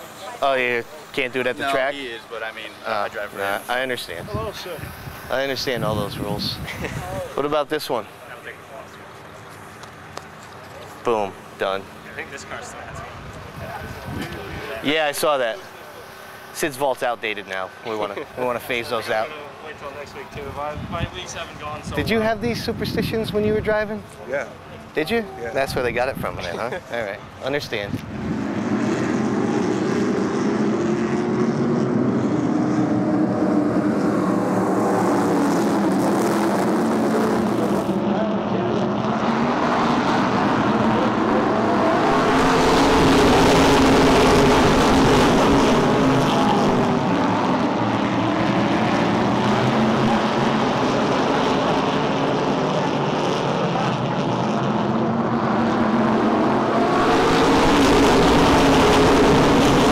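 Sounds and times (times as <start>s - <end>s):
race car engines: 0.0s - 59.9s.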